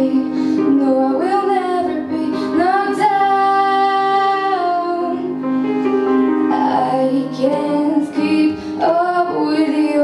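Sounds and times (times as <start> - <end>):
woman singing into microphone: 0.0 - 5.4, 6.4 - 10.0
grand piano: 0.0 - 10.0.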